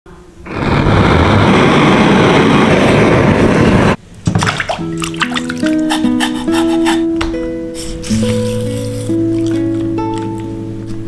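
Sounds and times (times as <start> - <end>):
loud steady rushing noise: 0.1 - 4.1.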